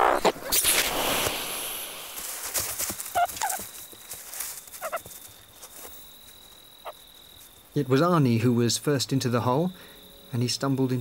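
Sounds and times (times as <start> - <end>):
short animal calls: 4.8 - 5.0
faint steady high tone: 7.8 - 11.0.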